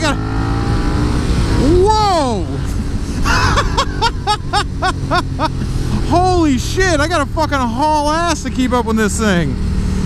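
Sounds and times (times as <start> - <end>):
motorcycle engine drone: 0.0 - 10.0
man laughing: 2.2 - 6.4.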